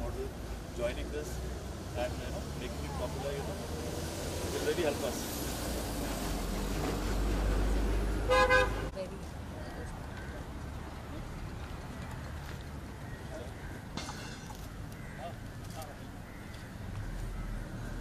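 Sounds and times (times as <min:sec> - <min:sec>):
vehicle rumble: 0:00.0 - 0:18.0
vehicle horn honk: 0:08.3 - 0:08.9.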